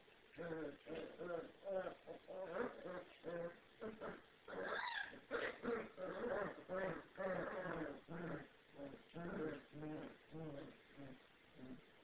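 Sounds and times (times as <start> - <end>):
puppies whining and yipping: 4.6 - 7.9.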